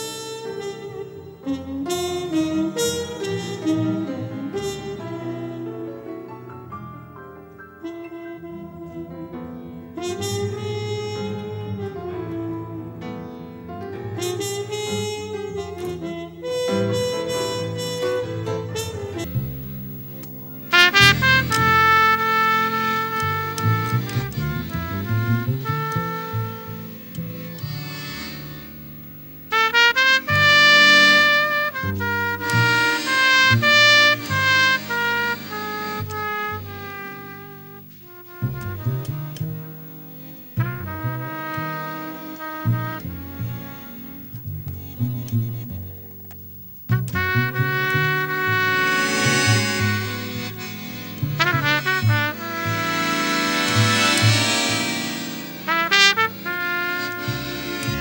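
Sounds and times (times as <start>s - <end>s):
muted trumpet: 0.0s - 5.9s, 7.8s - 9.4s, 10.0s - 12.9s, 14.2s - 19.6s, 20.6s - 28.8s, 29.5s - 58.0s
accordion chords: 0.0s - 58.0s
double bass: 0.0s - 58.0s.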